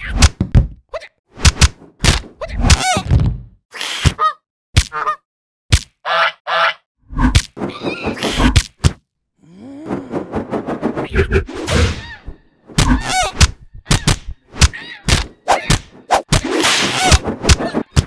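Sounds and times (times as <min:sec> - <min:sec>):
cartoon whacks and thuds: 0:00.0 - 0:00.8, 0:01.4 - 0:04.2, 0:05.7 - 0:06.0, 0:12.7 - 0:18.0.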